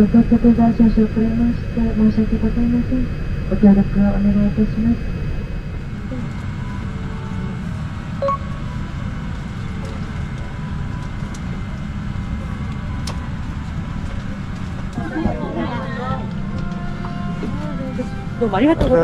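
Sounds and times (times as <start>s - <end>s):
airliner cabin rumble: 0.0s - 19.0s.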